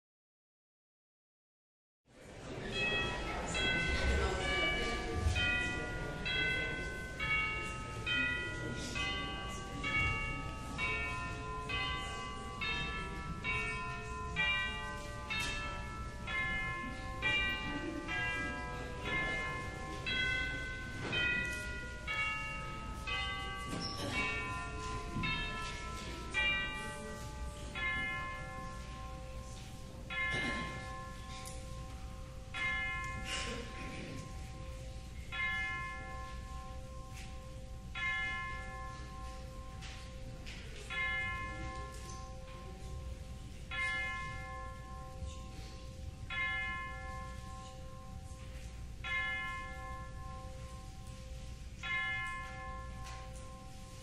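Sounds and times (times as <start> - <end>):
church bells ringing a melody: 2.5 - 54.0.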